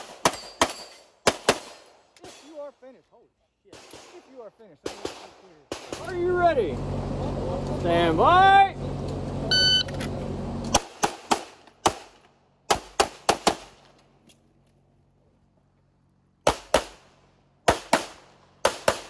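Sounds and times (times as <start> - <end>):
pistol shots: 0.0 - 2.4, 10.8 - 13.8, 16.4 - 17.0, 17.6 - 19.0
shot timer beep: 9.5 - 9.9.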